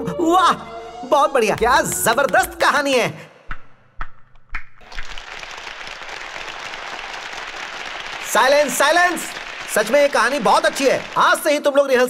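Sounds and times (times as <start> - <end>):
audience applauding: 4.8 - 11.7.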